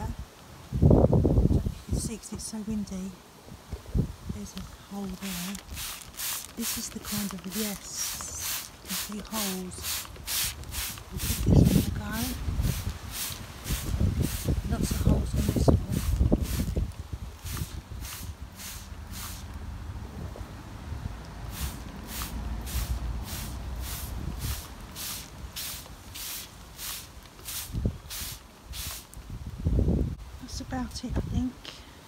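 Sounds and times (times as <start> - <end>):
wind buffeting microphone: 0.0 - 2.2, 3.4 - 6.0, 9.2 - 25.7, 27.4 - 31.5
spray bottle squirting: 5.0 - 16.8, 17.4 - 19.5, 21.5 - 29.2.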